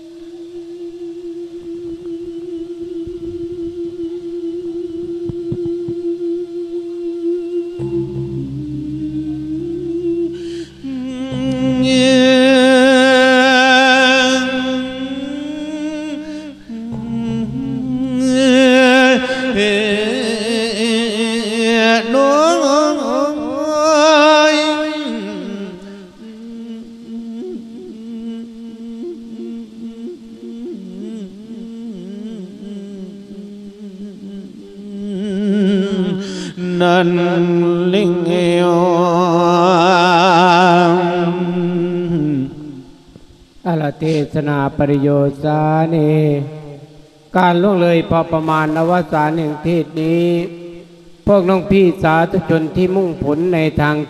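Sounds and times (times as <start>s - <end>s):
man chanting a long sung note: 0.0s - 54.0s.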